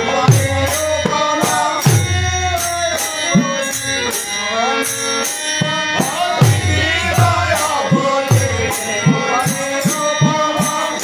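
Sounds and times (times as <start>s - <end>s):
harmonium chords: 0.0s - 11.0s
men singing: 0.0s - 11.0s.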